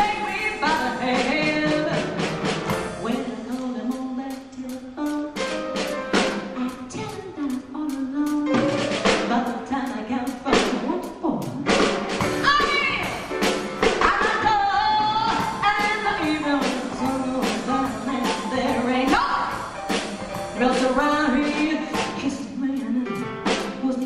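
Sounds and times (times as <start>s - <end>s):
woman singing with vibrato: 0.0s - 2.2s, 2.9s - 5.5s, 6.2s - 11.7s, 12.4s - 13.3s, 14.0s - 19.8s, 20.6s - 24.0s
drum kit steady beat: 0.0s - 24.0s
live band music: 0.0s - 24.0s.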